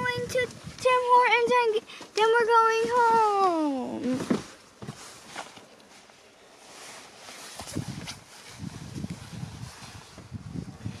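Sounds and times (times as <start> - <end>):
clothing rustling against seat: 2.0 - 11.0.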